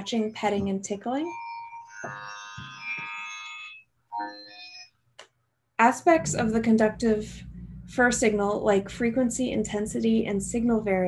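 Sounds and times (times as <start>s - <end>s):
higher electronic tone: 6.0s - 9.7s
synthesized electronic chord: 6.0s - 10.9s.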